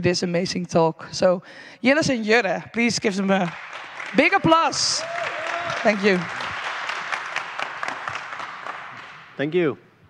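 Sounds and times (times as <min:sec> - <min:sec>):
audience applauding: 0:02.8 - 0:09.6.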